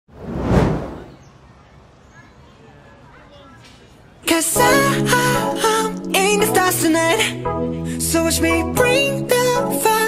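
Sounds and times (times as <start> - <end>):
whoosh sound effect: 0.1 - 1.2.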